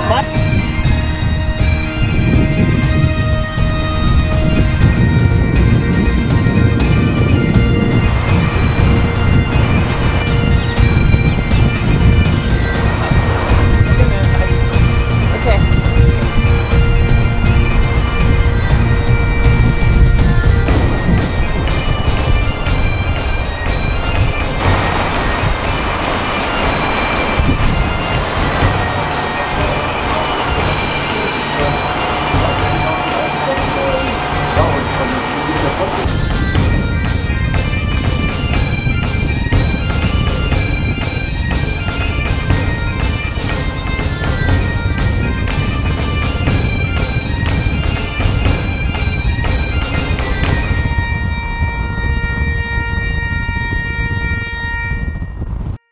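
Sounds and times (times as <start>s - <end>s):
reedy melody over drone: 0.0s - 55.5s.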